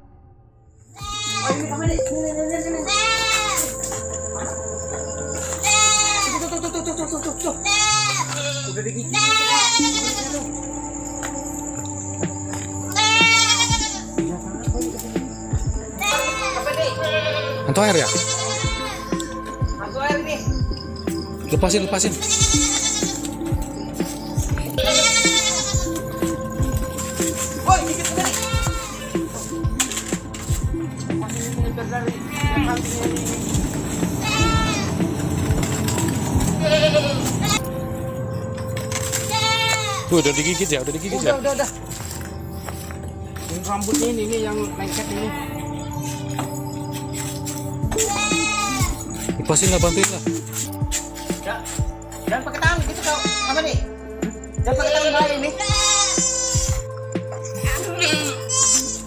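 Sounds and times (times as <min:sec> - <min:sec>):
droning music: 0:00.0 - 0:59.0
goats bleating: 0:01.0 - 0:02.1, 0:02.8 - 0:03.8, 0:05.5 - 0:10.6, 0:12.9 - 0:14.2, 0:16.0 - 0:19.4, 0:22.1 - 0:23.4, 0:24.8 - 0:30.2, 0:31.5 - 0:37.7, 0:39.0 - 0:42.0, 0:44.8 - 0:50.4, 0:52.8 - 0:53.9, 0:54.7 - 0:56.9, 0:57.6 - 0:59.0.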